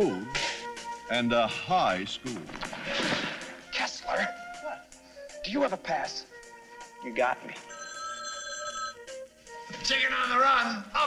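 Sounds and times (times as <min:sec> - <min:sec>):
background music: 0:00.0 - 0:11.0
telephone bell ringing: 0:07.6 - 0:09.2.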